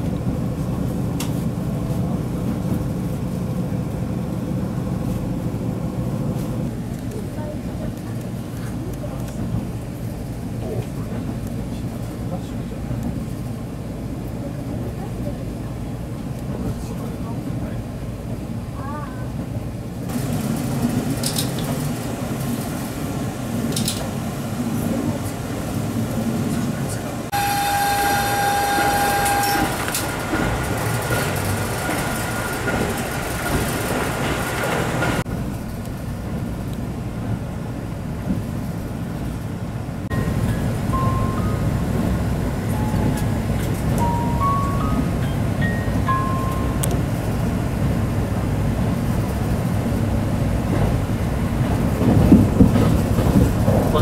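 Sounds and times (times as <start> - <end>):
diesel train rumble from inside: 0.0 - 54.0.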